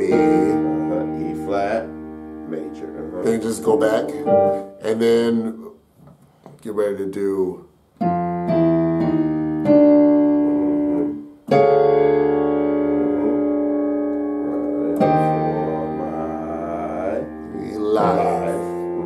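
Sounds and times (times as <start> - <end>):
keyboard piano chords: 0.0 - 5.6, 8.0 - 19.0.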